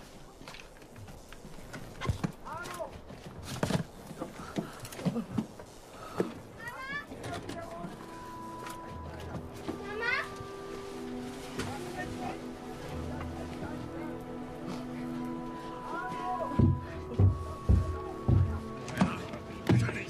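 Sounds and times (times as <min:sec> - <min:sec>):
held tones of background music: 0:07.4 - 0:20.0.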